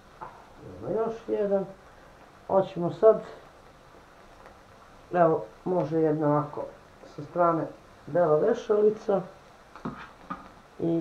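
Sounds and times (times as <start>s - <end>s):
faint steady background noise: 0.0s - 11.0s
woman speaking: 0.6s - 1.8s, 2.5s - 3.4s, 5.1s - 9.4s.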